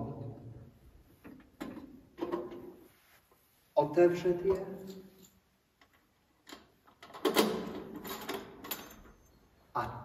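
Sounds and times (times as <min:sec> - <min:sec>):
metallic clicks and rattling: 0:04.8 - 0:09.4.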